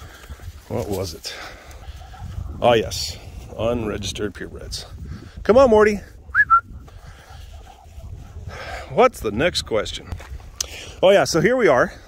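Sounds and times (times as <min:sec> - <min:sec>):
person whistling: 0:06.3 - 0:06.7.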